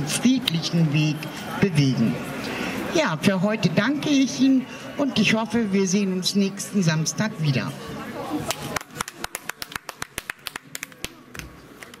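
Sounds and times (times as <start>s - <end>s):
sparse applause: 8.4s - 12.0s.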